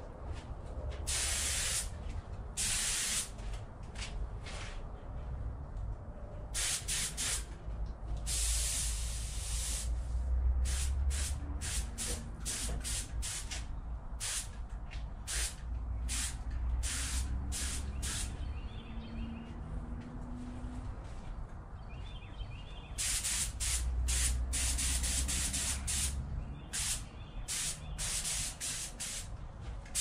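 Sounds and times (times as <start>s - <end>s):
spray gun hissing: 1.1s - 1.9s, 2.6s - 3.3s, 6.6s - 7.4s, 8.3s - 10.0s, 10.7s - 13.5s, 14.2s - 14.5s, 15.3s - 18.4s, 23.0s - 26.2s, 26.8s - 29.3s.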